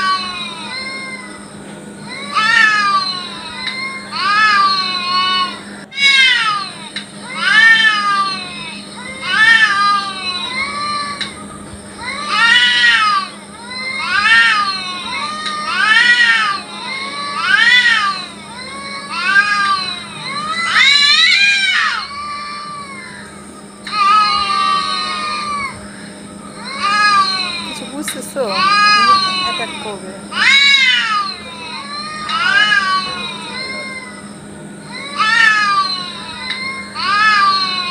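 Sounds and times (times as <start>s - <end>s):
cat yowling: 2.1s - 11.4s, 12.0s - 25.8s, 26.6s - 27.8s, 28.5s - 37.9s.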